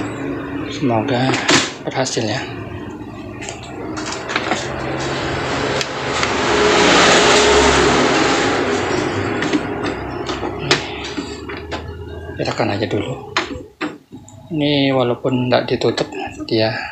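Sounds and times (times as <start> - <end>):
printer motors whirring: 0.0 - 14.4.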